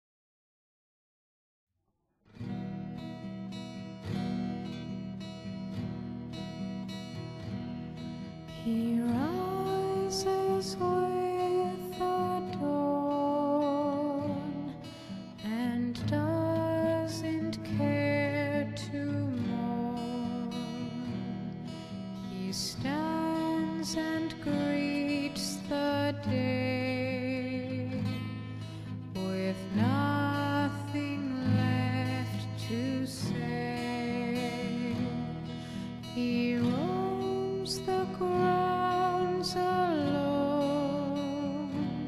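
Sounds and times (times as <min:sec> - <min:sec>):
acoustic guitar: 0:02.2 - 0:42.0.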